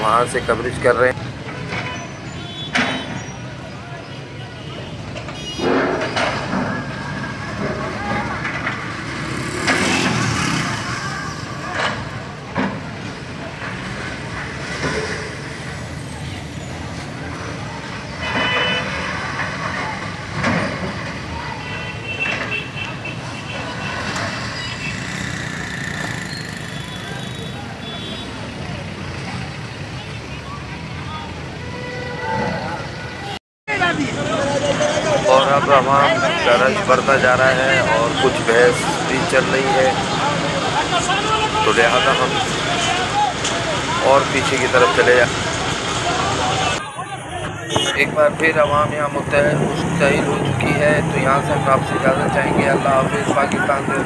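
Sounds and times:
crowd voices: 0.0 - 54.0.

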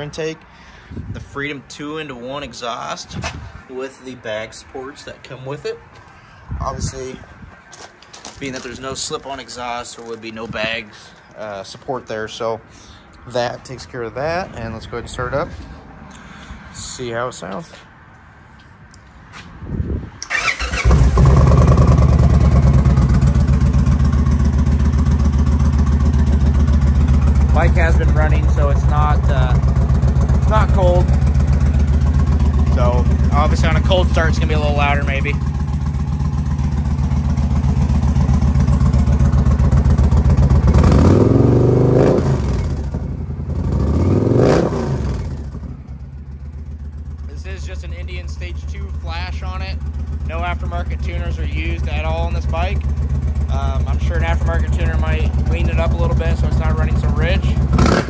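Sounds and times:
motorcycle starter cranking: 20.2 - 23.8
motorcycle engine idling: 20.4 - 44.1, 45.0 - 58.0.

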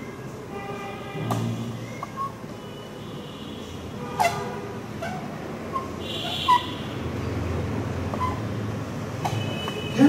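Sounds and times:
whiteboard marker squeaking: 4.2 - 6.7, 8.1 - 8.5.

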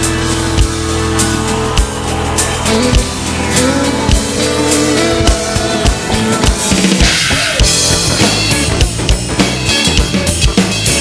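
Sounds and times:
electronic drum kit funk groove: 0.0 - 11.0
live band with bass: 0.0 - 11.0.

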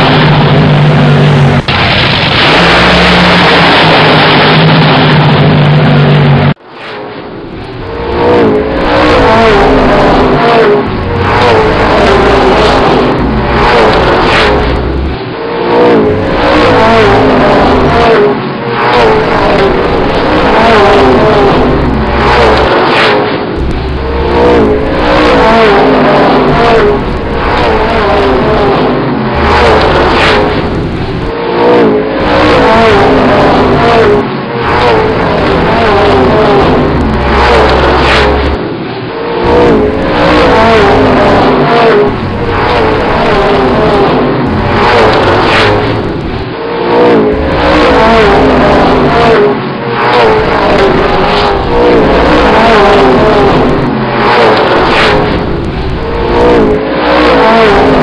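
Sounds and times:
car engine accelerating hard: 0.0 - 6.6, 7.6 - 38.8, 39.4 - 58.0
loud steady drone: 0.0 - 58.0
road and wind noise: 0.0 - 58.0.

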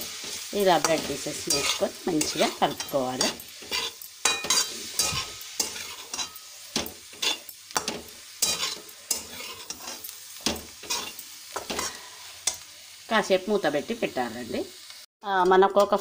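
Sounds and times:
metal spatula scraping a pan: 0.0 - 12.7
frying sizzle: 0.0 - 16.0.

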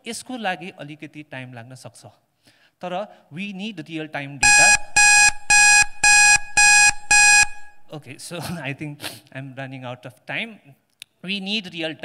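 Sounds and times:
electronic buzzer beeping: 4.4 - 8.0.

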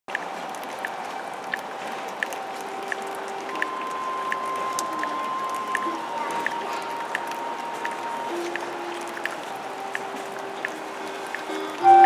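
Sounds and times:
light repeating tick: 0.1 - 12.0
orchestra playing softly: 2.3 - 12.0.

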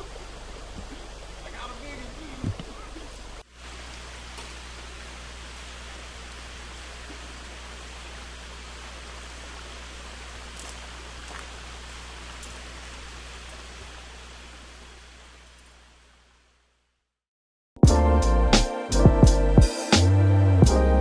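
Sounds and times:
outdoor background hiss: 0.0 - 17.2.

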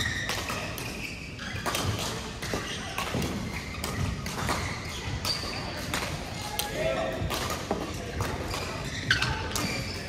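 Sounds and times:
rackets hitting shuttlecock: 0.0 - 10.0
shoes squeaking on court floor: 0.0 - 10.0.

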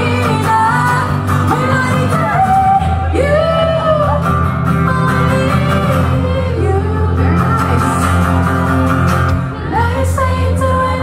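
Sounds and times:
strummed acoustic guitar: 0.0 - 11.0.

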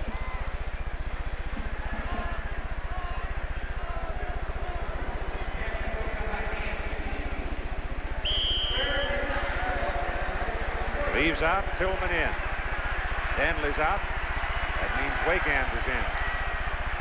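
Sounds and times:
low recording hum: 0.0 - 17.0
stadium crowd noise: 0.0 - 17.0
whistle blast: 8.2 - 9.1.

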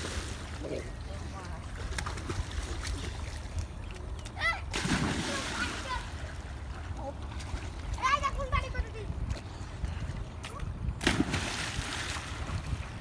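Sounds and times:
loud water splash: 4.7 - 6.1, 11.0 - 12.6.

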